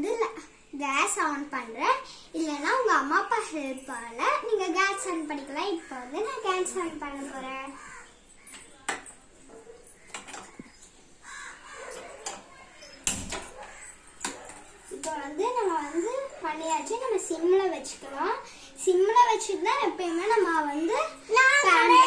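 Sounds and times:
child talking sing-song: 0.0s - 7.8s, 15.0s - 22.0s.

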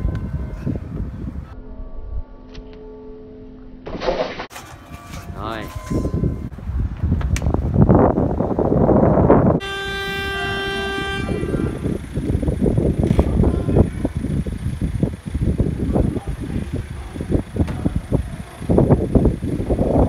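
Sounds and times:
street noise: 0.0s - 1.6s, 4.5s - 20.0s
car horn honk: 9.6s - 12.3s.

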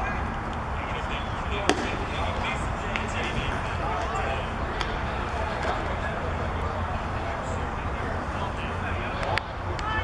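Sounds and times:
crowd chatter: 0.0s - 10.0s
baseball popping into mitt: 1.7s - 2.1s.

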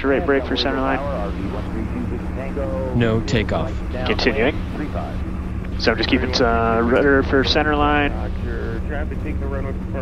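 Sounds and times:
aircraft cabin rumble with hum: 0.0s - 10.0s.

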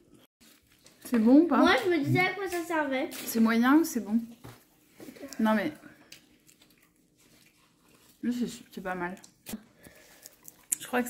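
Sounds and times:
biting and chewing food: 4.8s - 11.0s.

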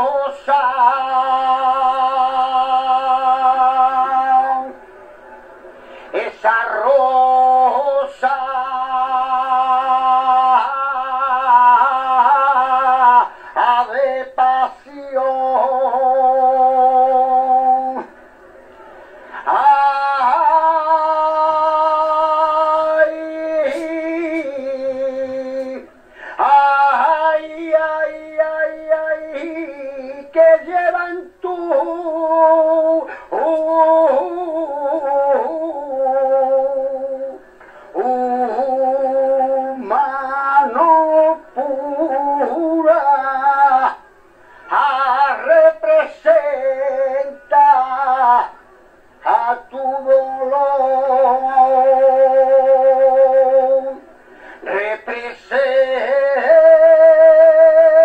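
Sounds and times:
man singing unaccompanied lament: 0.0s - 4.8s, 6.1s - 18.1s, 19.2s - 58.0s.

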